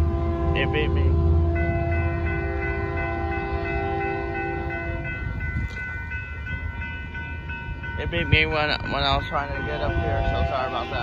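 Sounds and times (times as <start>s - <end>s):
locomotive air horn blast: 0.0s - 5.1s, 9.8s - 11.0s
crossing warning bell ringing: 0.0s - 11.0s
train rumble: 0.0s - 11.0s.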